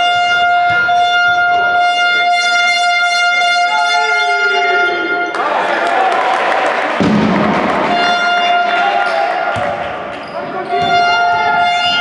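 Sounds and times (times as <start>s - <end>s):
basketball bouncing on hardwood floor: 0.0s - 1.8s
long steady horn tone: 0.0s - 5.4s, 7.9s - 8.9s, 10.7s - 12.0s
hubbub of voices: 3.7s - 12.0s.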